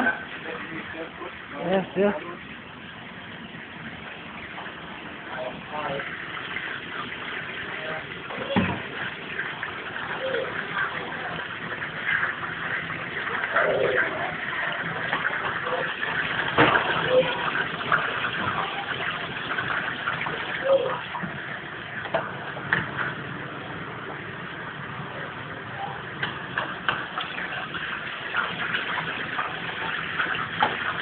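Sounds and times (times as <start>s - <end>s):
chips sizzling in deep fryer: 0.0s - 31.0s.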